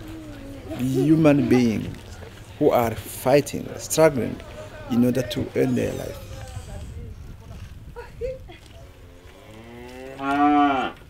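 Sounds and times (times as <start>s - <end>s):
cow mooing: 9.4s - 11.0s.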